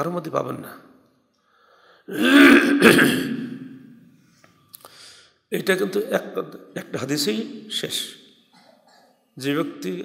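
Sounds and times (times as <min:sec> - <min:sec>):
man clearing his throat: 0:02.1 - 0:03.6.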